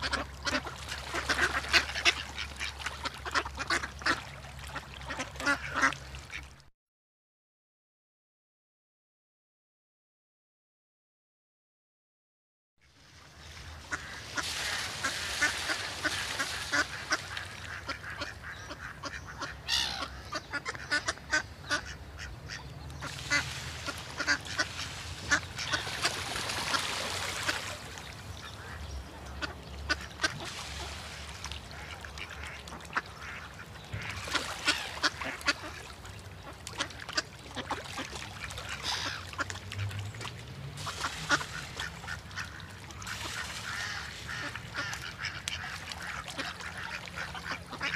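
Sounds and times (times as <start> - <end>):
ducks quacking: 0.0 - 6.5, 13.8 - 40.1, 40.8 - 47.9.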